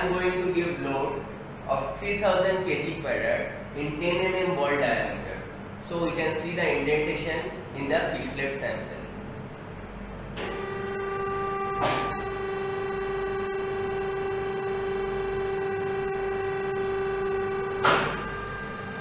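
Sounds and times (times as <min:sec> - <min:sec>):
machine mechanism humming: 0:00.0 - 0:19.0
machine knock: 0:11.8 - 0:12.2, 0:17.8 - 0:18.3
machine thump: 0:11.8 - 0:12.3, 0:17.7 - 0:18.4.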